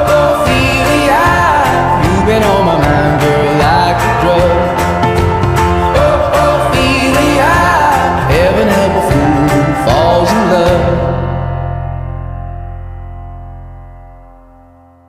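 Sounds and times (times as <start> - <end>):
person singing: 0.0 - 11.6
band with guitar and drums: 0.0 - 14.9.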